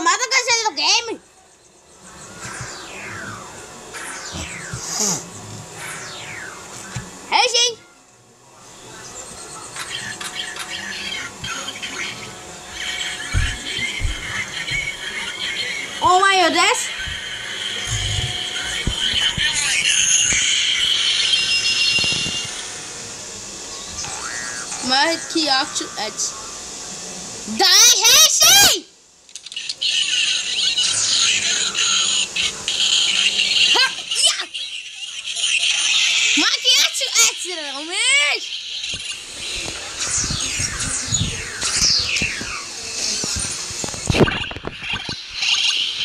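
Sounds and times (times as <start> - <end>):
electronic chirping and beeping: 1.6 - 7.9, 9.0 - 22.9, 29.4 - 46.0
small clicks and squeaks: 29.3 - 29.8.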